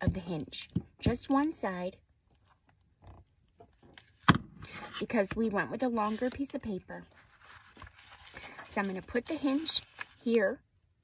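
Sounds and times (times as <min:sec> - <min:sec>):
paper rustling: 0:05.9 - 0:10.4.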